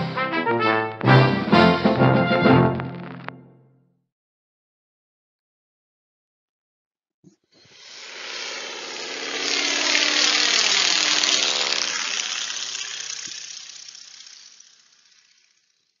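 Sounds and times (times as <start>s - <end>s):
propeller airplane flying past: 7.7s - 16.0s.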